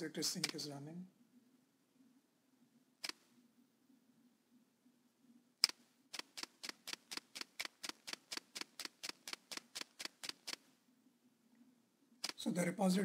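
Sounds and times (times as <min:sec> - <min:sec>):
computer mouse clicking: 0:05.6 - 0:10.7.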